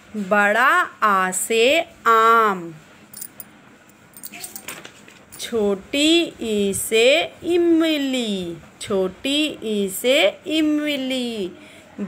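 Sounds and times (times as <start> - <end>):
page turning rustle: 4.6 - 5.3.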